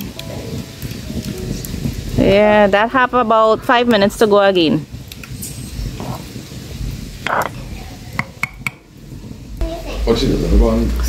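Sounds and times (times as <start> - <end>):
rice boiling in pot: 0.0 - 9.6.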